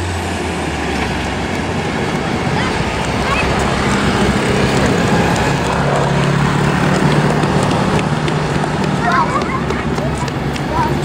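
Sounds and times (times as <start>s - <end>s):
train engine rumbling: 0.0s - 11.0s.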